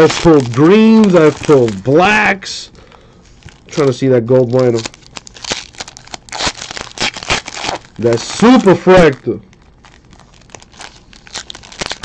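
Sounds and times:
wrapper being torn open: 0.0 - 2.2, 3.4 - 12.0.

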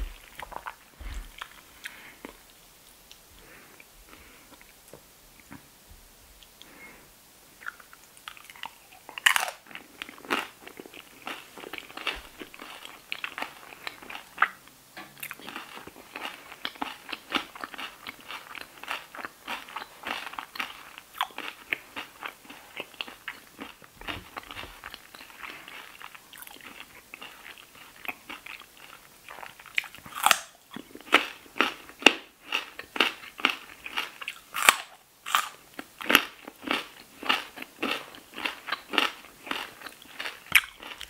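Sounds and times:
crunchy chewing: 0.0 - 4.8, 7.6 - 41.0
crunchy chip bite: 7.6 - 14.6, 15.2 - 41.0.

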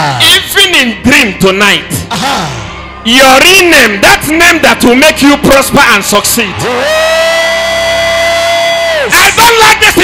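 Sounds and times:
man shouting high note: 6.5 - 10.0.

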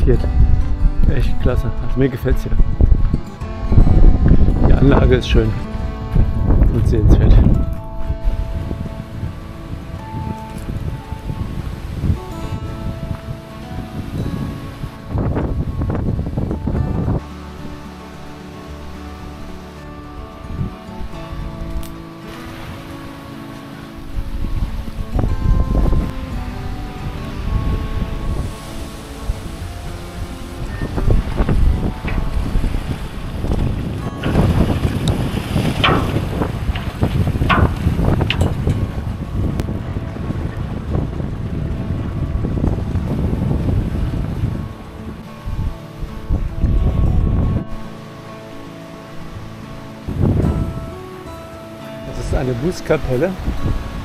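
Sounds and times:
soft background music: 0.0 - 54.0
wind buffeting microphone: 0.0 - 54.0.

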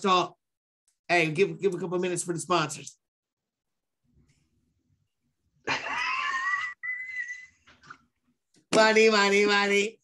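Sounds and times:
man laughing loudly: 5.6 - 7.3.

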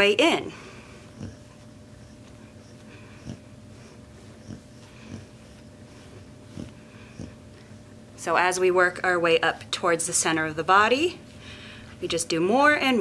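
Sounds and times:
dog breathing softly: 0.6 - 7.8.

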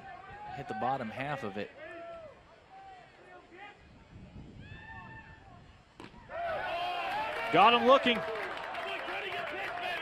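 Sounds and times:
baseball popping into mitt: 6.0 - 6.2.

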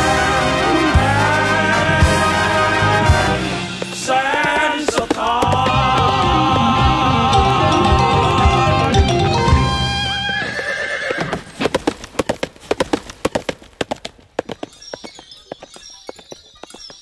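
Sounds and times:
song playing: 0.0 - 4.3, 5.5 - 10.2
horse galloping on dirt: 3.1 - 7.0, 10.1 - 17.0.

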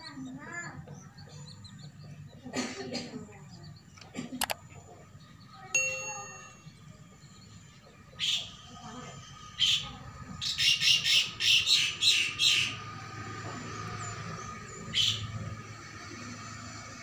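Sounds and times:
harsh bird calls: 0.0 - 17.0.

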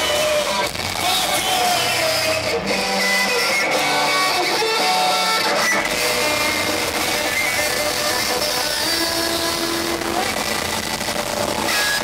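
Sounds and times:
rock band with distorted guitars: 0.0 - 12.0.

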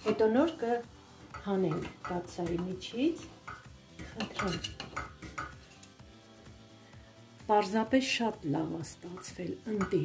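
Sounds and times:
metal knife scraping a pot: 1.3 - 6.0.

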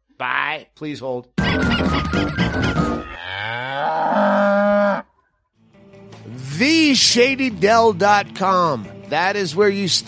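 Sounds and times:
cow mooing: 3.1 - 5.1.

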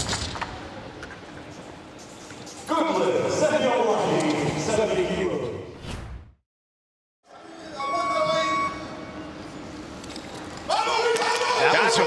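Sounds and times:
competition hall crowd noise: 7.3 - 12.0.

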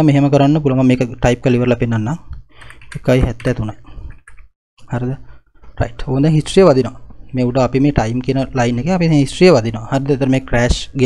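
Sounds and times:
person speaking: 0.0 - 4.2, 4.8 - 11.0
computer keyboard typing: 2.6 - 3.6.

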